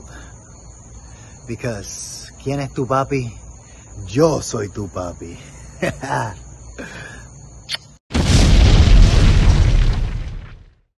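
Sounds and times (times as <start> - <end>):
person laughing: 5.7 - 7.0.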